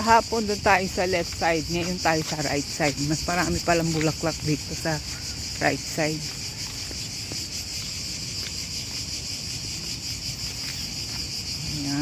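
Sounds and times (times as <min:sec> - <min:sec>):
insects chorus shrill drone: 0:00.0 - 0:12.0.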